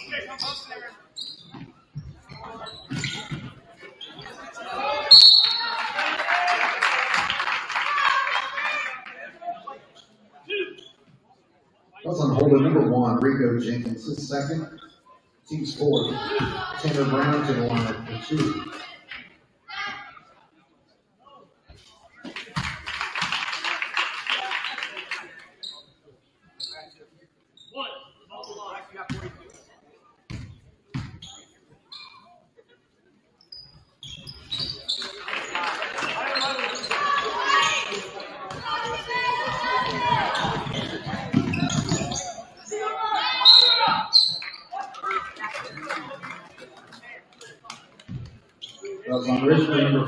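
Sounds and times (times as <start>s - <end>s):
crowd cheering: 4.6s - 9.2s, 35.0s - 41.6s.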